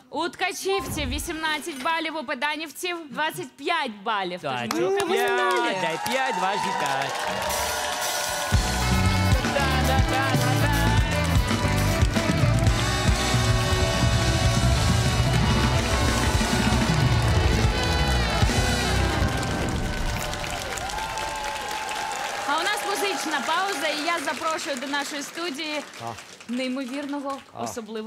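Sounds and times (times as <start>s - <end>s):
band playing upbeat music: 7.1s - 20.3s
drums and cymbals: 7.4s - 19.8s
heavy driving bass line: 8.5s - 20.3s.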